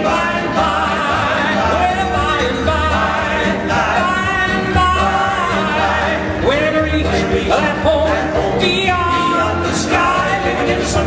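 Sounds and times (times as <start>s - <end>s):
keyboard and band accompaniment: 0.0s - 11.0s
male quartet singing in harmony: 0.0s - 11.0s.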